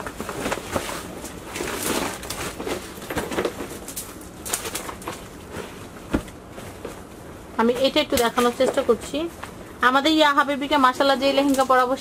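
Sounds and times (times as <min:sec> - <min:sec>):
plastic packaging crinkling: 0:00.0 - 0:06.0.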